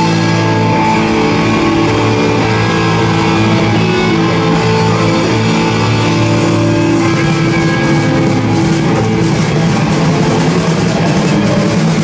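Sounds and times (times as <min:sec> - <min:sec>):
drums: 0:00.0 - 0:12.0
electric guitars and bass: 0:00.0 - 0:12.0.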